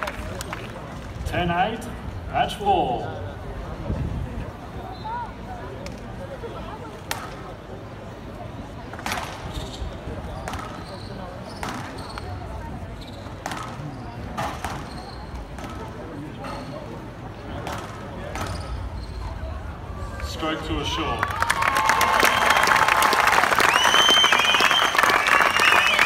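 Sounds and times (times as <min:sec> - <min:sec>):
squash ball hits: 0:10.4 - 0:10.8, 0:11.6 - 0:12.0, 0:13.4 - 0:14.9, 0:17.6 - 0:18.7.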